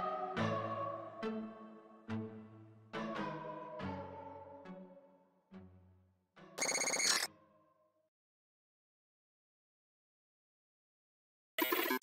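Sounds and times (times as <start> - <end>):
electronic ringing tone: 6.6 - 7.3.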